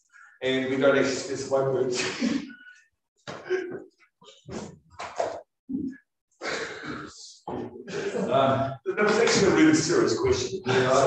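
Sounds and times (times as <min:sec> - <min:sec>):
breathy vocal sound: 0:05.7 - 0:08.4.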